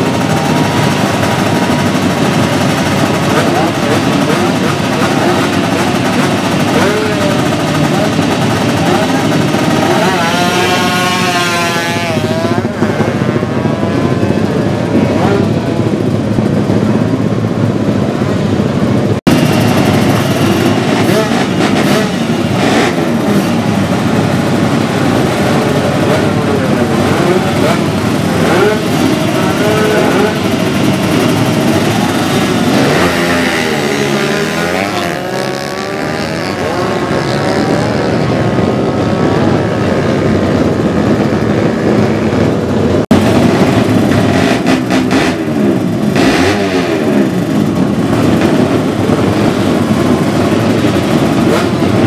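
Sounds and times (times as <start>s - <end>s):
motorcycle engines revving: 0.0s - 52.0s.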